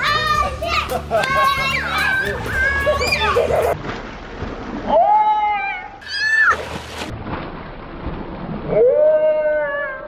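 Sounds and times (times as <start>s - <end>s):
children cheering and squealing: 0.0s - 3.8s, 5.4s - 6.7s
children laughing: 0.4s - 3.8s.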